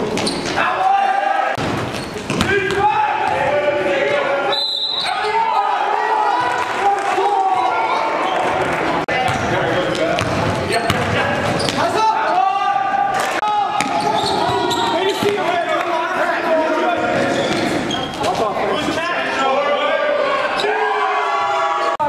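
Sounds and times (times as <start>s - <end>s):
sneakers squeaking: 0.0s - 0.6s, 1.6s - 3.5s, 7.9s - 12.4s, 13.8s - 15.5s, 17.0s - 19.0s
players' voices: 0.0s - 22.0s.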